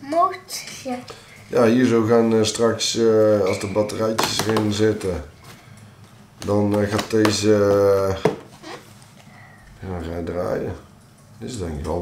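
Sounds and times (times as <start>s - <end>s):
man speaking: 1.5s - 5.4s, 9.8s - 12.0s.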